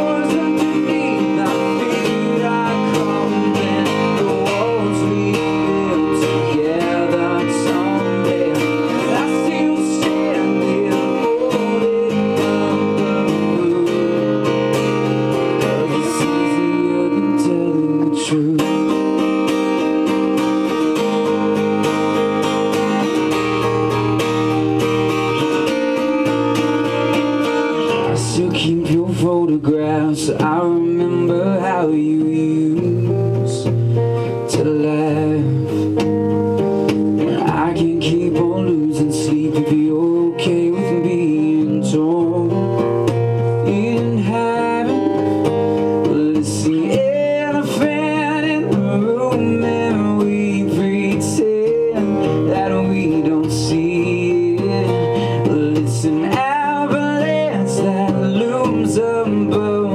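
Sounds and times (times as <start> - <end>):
man singing: 0.0 - 36.2, 37.2 - 59.9
acoustic guitars strummed: 0.0 - 59.9.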